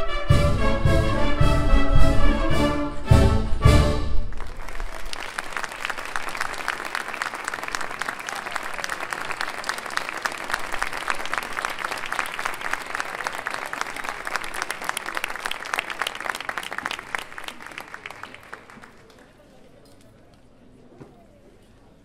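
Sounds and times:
audience applauding: 4.2s - 19.8s.

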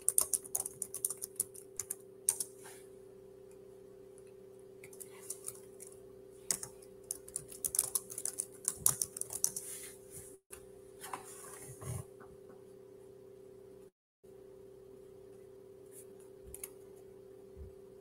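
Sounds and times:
typing on computer keyboard: 0.0s - 2.5s, 6.5s - 9.6s
faint steady hum: 0.0s - 18.0s.

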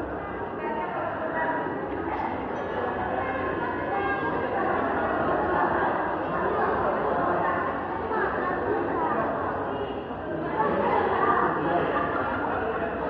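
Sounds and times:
overlapping voices chattering: 0.0s - 13.0s.

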